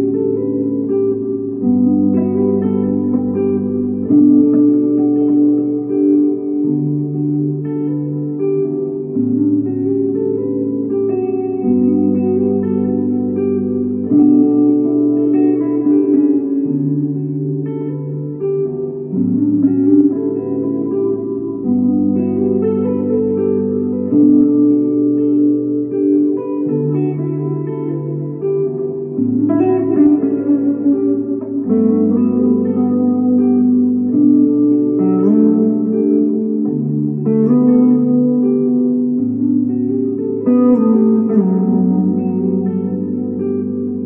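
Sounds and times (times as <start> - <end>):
electric guitar through amplifier: 0.0 - 44.0.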